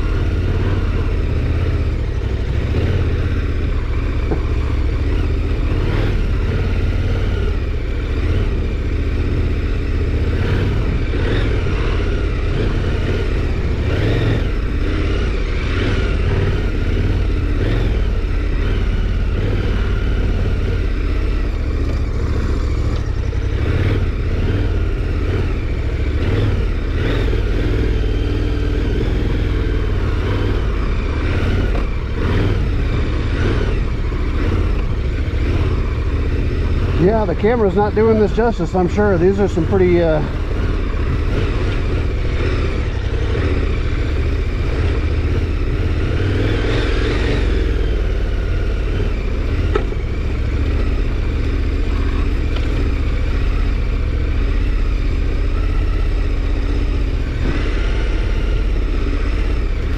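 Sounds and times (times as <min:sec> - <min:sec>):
motorcycle rattles and knocks: 0:00.0 - 0:18.3, 0:18.9 - 0:54.4
motorcycle engine revving: 0:00.0 - 0:59.9.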